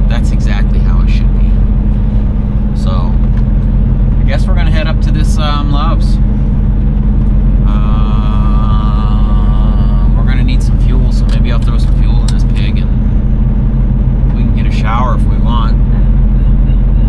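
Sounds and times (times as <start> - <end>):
diesel truck engine droning: 0.0 - 17.0.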